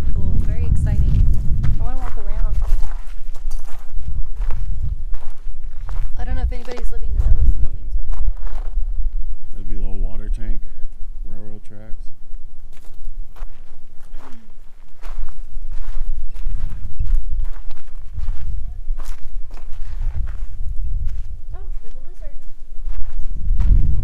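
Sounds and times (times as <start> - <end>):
footsteps on gravelly dirt: 0.0 - 9.2, 12.7 - 24.0
low rumble on microphone: 0.0 - 24.0.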